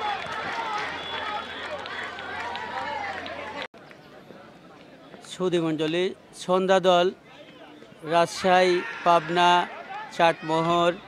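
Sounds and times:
crowd cheering and shouting: 0.0s - 3.7s, 8.1s - 11.0s.

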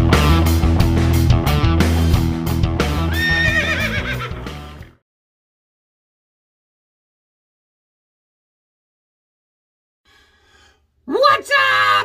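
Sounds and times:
rock music: 0.0s - 5.0s
horse whinnying: 3.0s - 4.4s.

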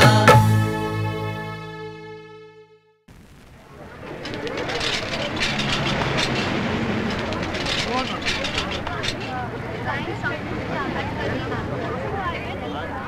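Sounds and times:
chatter of many voices: 3.6s - 13.0s
motor traffic: 3.9s - 13.0s.

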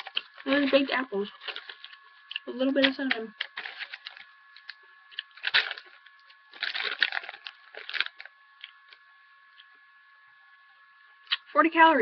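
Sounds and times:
crunching apple chips: 0.0s - 9.7s.

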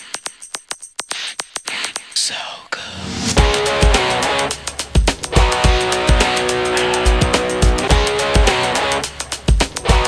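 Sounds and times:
rapid hi-hat clicks: 0.0s - 2.3s, 3.4s - 10.0s
whispered vocal: 2.2s - 3.2s.

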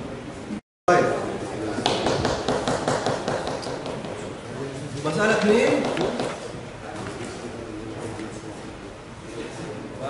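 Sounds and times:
rapid light tapping: 5.4s - 6.4s.

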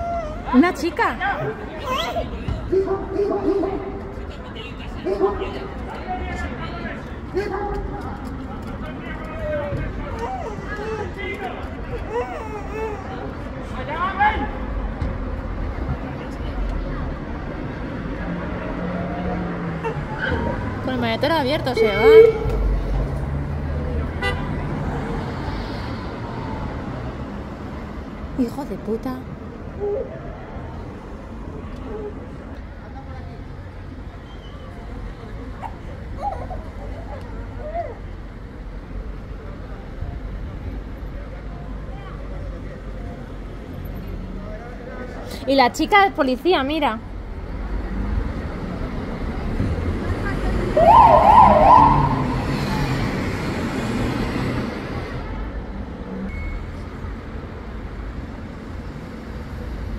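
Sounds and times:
faint voices: 0.0s - 23.1s
low rumble of street noise: 0.0s - 59.9s
distant voices: 47.4s - 55.2s.

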